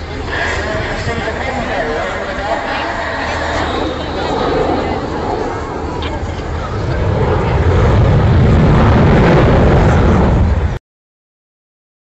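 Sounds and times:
jet bomber roaring overhead: 0.0 - 10.8.

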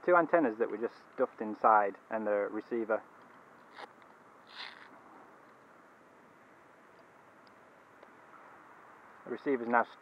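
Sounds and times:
faint outdoor hiss: 0.0 - 10.0
soft rustle: 3.2 - 5.7.

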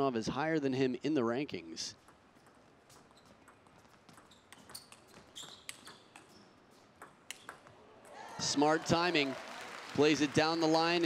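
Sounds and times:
table tennis ball clicking: 2.0 - 6.3, 7.0 - 8.2.

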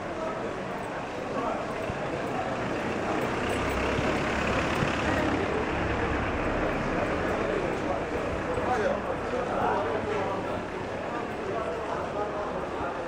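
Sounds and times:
passers-by talking: 0.0 - 13.0
motor vehicle engine approaching: 1.3 - 11.5.

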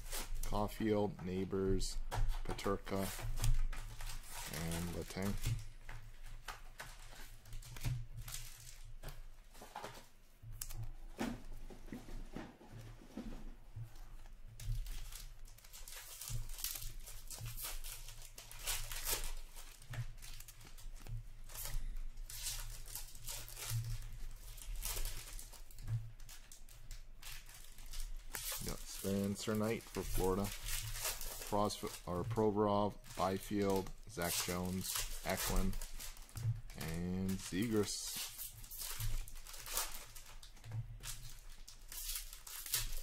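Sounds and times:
cards rustling: 0.0 - 11.6, 14.1 - 43.0
wrapper tearing and crinkling: 2.6 - 10.8, 14.6 - 43.0.

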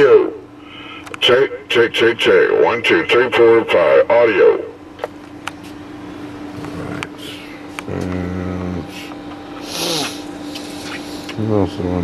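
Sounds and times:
faint electrical hum: 0.0 - 12.0
man saying um: 6.6 - 9.1.

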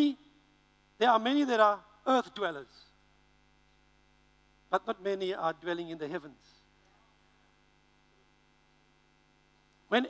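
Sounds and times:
faint mains hum: 0.0 - 10.0
man speaking: 1.0 - 2.8, 4.7 - 6.6.

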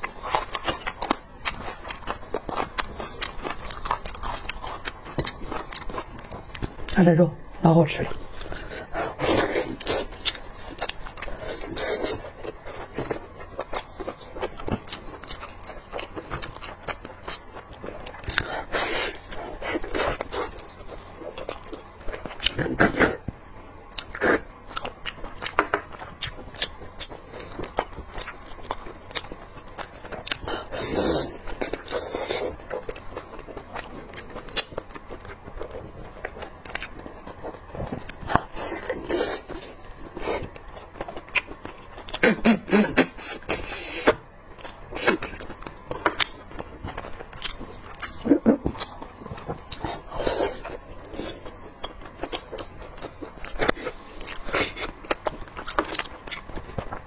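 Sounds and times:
wet chewing and mouth clicks: 0.0 - 7.0, 8.0 - 57.0.

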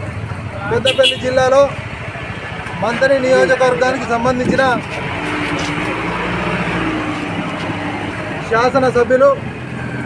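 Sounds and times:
street noise: 0.0 - 10.0.

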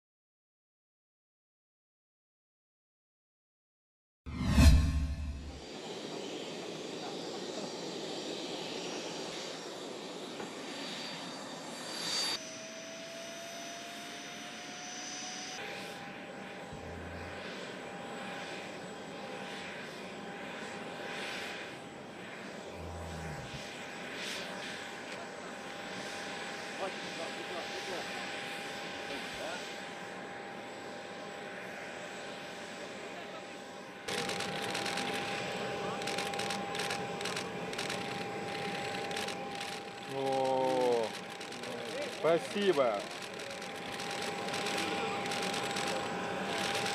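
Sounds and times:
high-pitched jet whine: 4.3 - 46.9
jet engine rushing: 4.3 - 46.9.

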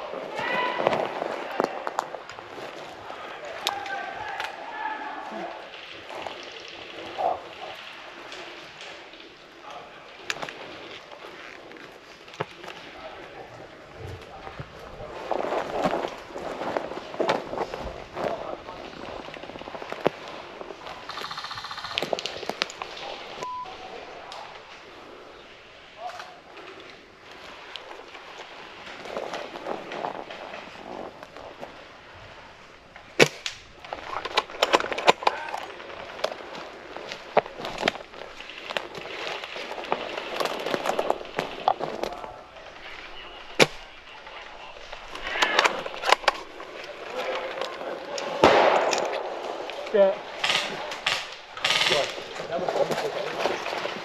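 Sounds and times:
gear brushing through branches: 0.0 - 54.0
footsteps crunching on forest floor: 9.7 - 24.9, 26.9 - 54.0.

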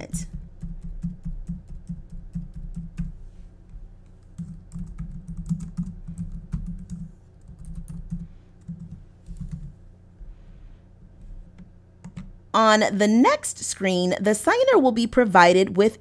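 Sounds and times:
typing on computer keyboard: 0.3 - 3.1, 4.2 - 9.7.

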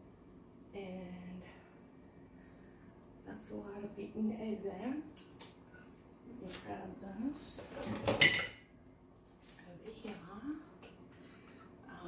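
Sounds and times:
kitchen utensils clattering: 7.5 - 8.6.

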